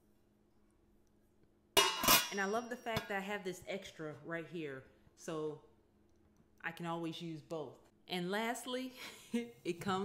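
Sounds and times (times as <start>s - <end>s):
metal lid clanging on pan: 1.8s - 2.5s.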